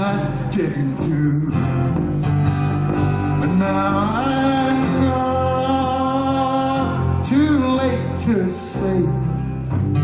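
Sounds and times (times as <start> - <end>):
bass guitar: 0.0 - 10.0
strummed guitars: 0.0 - 10.0.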